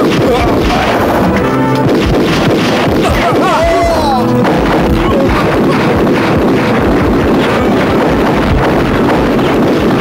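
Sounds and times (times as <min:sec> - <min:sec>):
truck engine running: 0:00.6 - 0:10.0.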